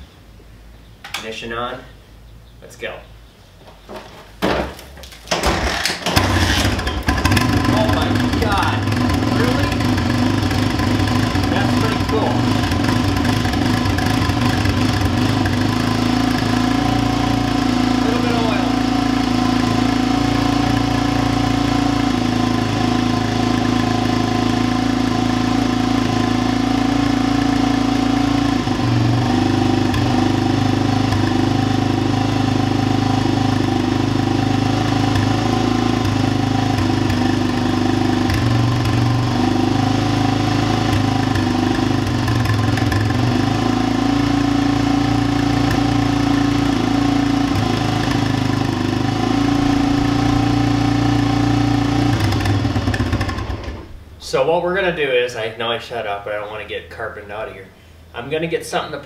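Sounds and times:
single-cylinder engine idling: 0:05.5 - 0:54.0.

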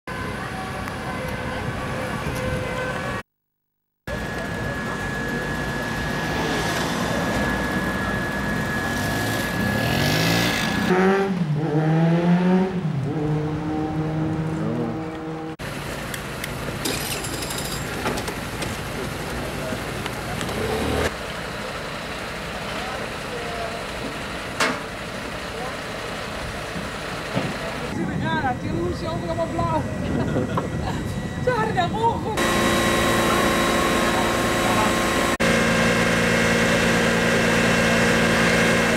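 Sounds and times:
street traffic engine hum: 0:00.1 - 0:03.3, 0:04.1 - 0:38.9
faint voices: 0:04.1 - 0:09.0.

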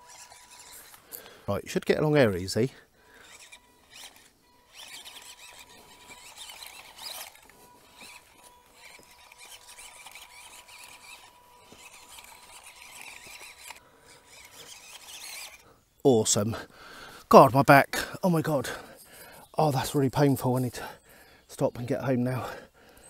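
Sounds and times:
small electric motor whining: 0:00.0 - 0:16.0.

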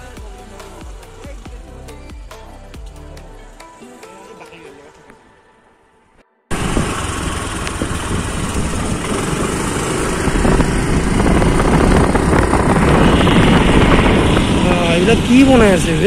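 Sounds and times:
vehicle engine noise: 0:06.5 - 0:16.0
wind on microphone: 0:06.5 - 0:16.0.

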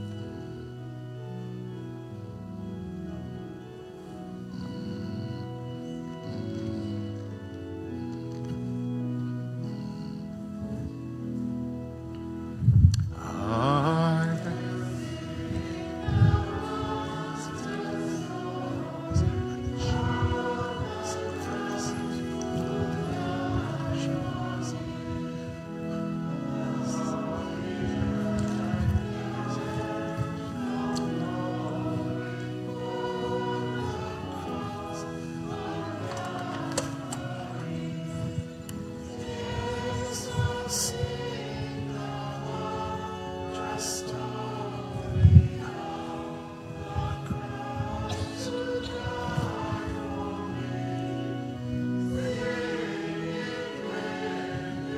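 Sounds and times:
congregation singing a hymn: 0:00.0 - 0:54.9
organ chords: 0:00.0 - 0:54.9.

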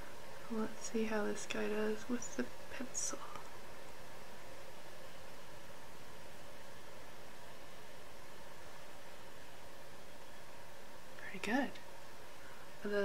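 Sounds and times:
room tone hiss: 0:00.0 - 0:13.0.

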